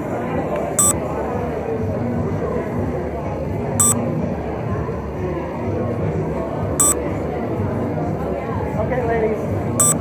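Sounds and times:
crowd chatter: 0.0 - 10.0
camera beeps: 9.8 - 10.0.

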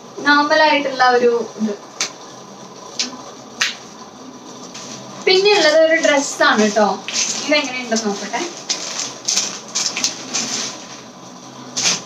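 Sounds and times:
plastic packaging crinkling: 5.5 - 11.2.

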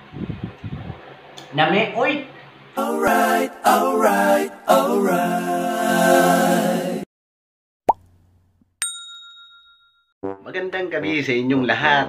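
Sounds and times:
notification bell ding: 8.8 - 10.1.

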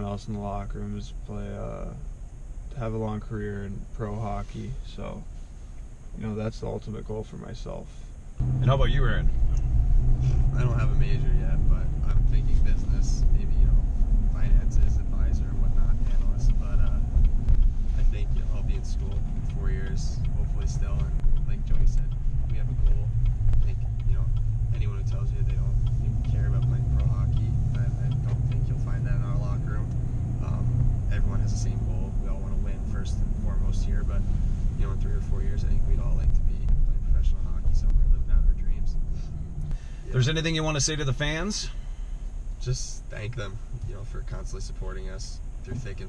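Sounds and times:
faint talking: 0.0 - 2.0, 10.5 - 13.8, 14.4 - 17.0, 18.0 - 34.2, 34.8 - 39.0, 42.6 - 46.0
road and engine rumble in cab: 0.0 - 46.0.

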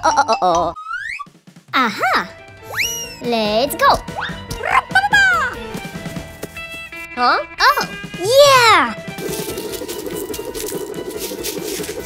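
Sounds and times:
light background music: 1.4 - 12.0
cartoon scramble rattling: 7.8 - 12.0.

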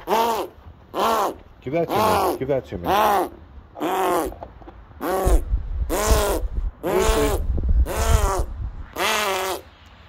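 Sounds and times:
chimpanzee hooting: 0.0 - 4.4, 5.0 - 9.7.

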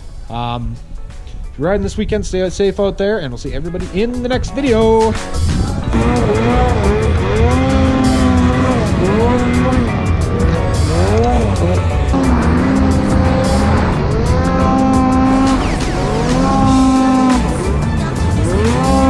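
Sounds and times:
music with steady beat: 3.4 - 19.0
snowmobile engine revving: 5.5 - 19.0.

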